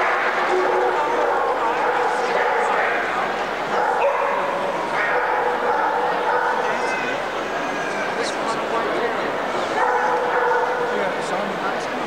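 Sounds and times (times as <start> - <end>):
dogs barking and yipping: 0.0 - 7.1, 9.8 - 11.0
crowd chatter: 0.0 - 12.0.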